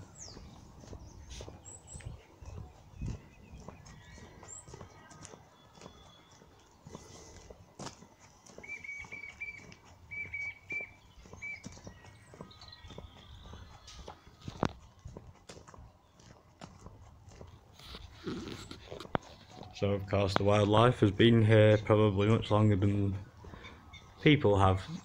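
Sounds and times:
small bird chirping: 0.0s - 7.2s, 8.6s - 14.6s
footsteps crunching on gravel: 0.0s - 25.0s.

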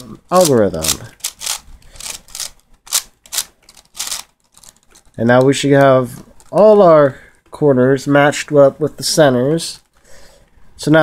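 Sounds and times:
puzzle cube clicking: 0.4s - 5.5s.

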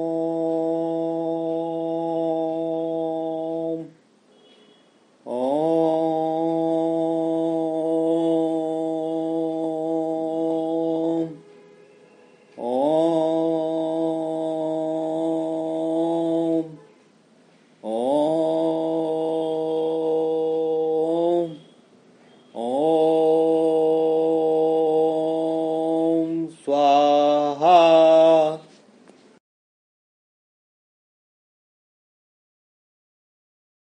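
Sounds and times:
voice chanting a long note: 0.0s - 4.0s, 5.2s - 17.0s, 17.8s - 21.8s, 22.5s - 28.7s.

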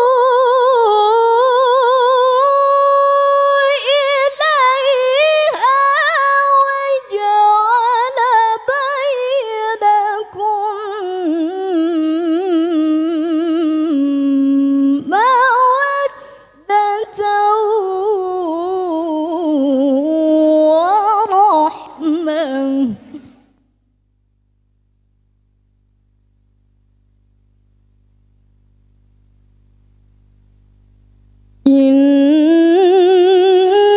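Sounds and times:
woman reciting melodically into microphone: 0.0s - 23.5s, 31.6s - 33.9s.

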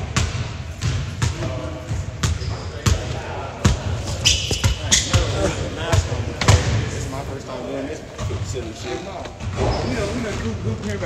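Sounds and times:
basketballs bouncing on wood floor: 0.0s - 7.0s.

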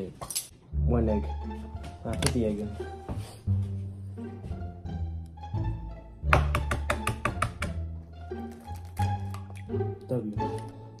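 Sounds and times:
low bowed strings and bass: 0.6s - 11.0s.

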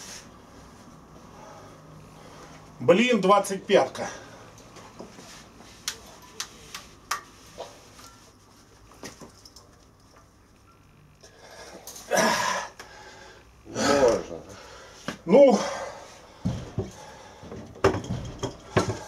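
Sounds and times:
man grunting: 12.1s - 12.7s, 13.7s - 14.5s.

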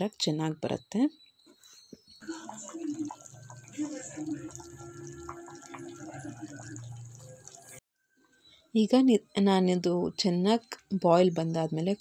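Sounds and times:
food boiling in a pot: 2.2s - 7.8s.

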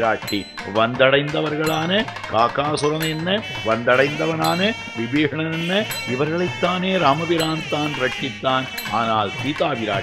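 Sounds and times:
man narrating: 0.0s - 10.0s.

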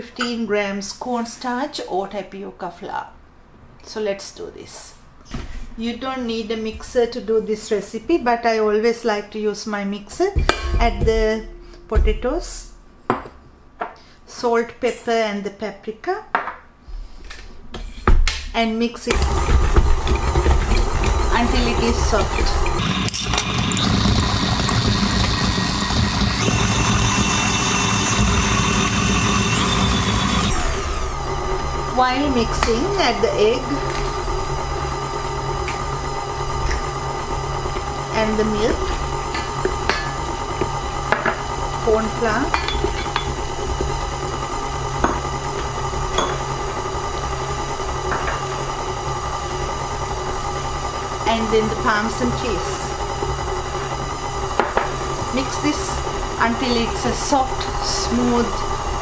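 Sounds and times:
stand mixer motor whining: 19.1s - 59.0s.

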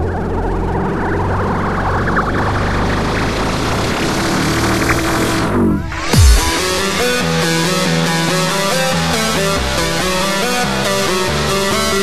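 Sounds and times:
noise sweep: 0.0s - 9.1s
sustained synthesizer chords: 0.0s - 12.0s.

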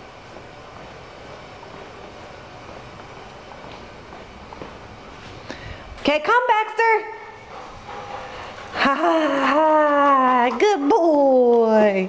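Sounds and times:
person laughing: 8.8s - 9.8s.

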